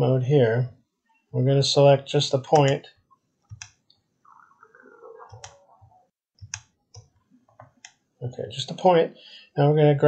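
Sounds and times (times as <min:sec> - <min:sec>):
computer mouse clicks: 0:03.4 - 0:04.0, 0:05.2 - 0:08.0.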